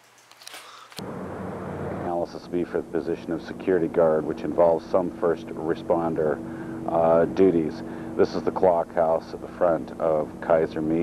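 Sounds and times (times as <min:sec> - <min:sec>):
low hum: 0:01.0 - 0:11.0.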